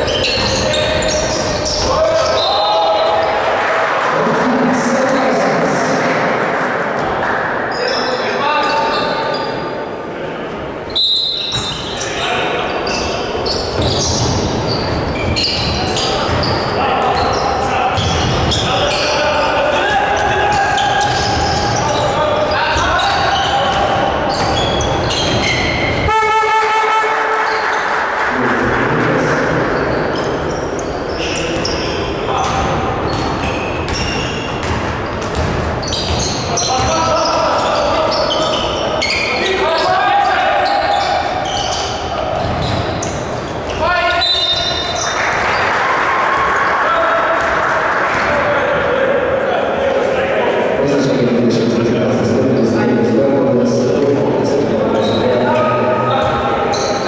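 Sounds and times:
players shouting: 0.0 - 6.0
basketball bouncing on wooden court: 13.7 - 16.7, 21.0 - 22.0, 32.4 - 37.2, 42.3 - 43.8.

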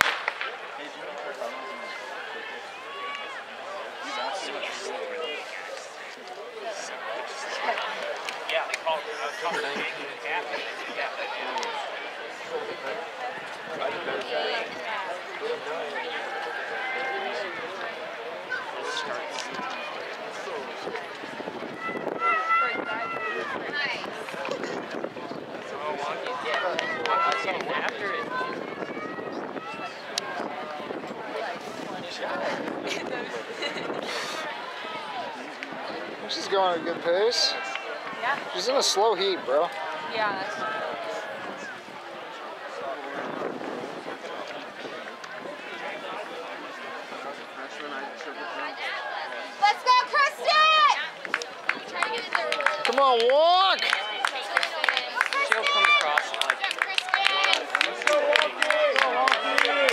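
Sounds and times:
spectators talking and calling out: 0.0 - 59.9.

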